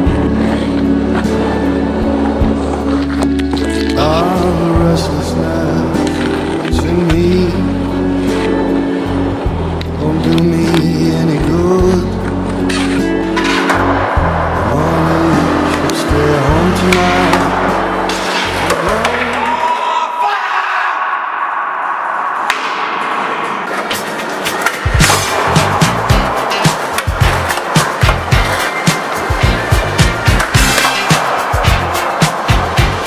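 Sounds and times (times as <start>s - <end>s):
skateboard rolling and clacking: 23.0s - 33.0s
background music with beat: 23.7s - 33.0s.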